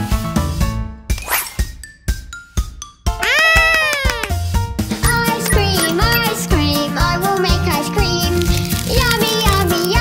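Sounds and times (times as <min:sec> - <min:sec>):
light children's music: 0:00.0 - 0:10.0
cartoon voice exclamation: 0:03.2 - 0:04.4.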